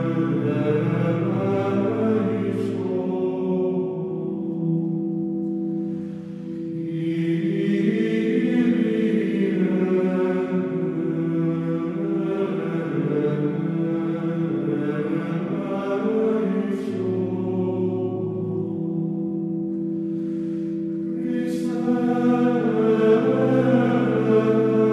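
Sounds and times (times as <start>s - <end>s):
voices chanting over a drone: 0.0s - 24.9s.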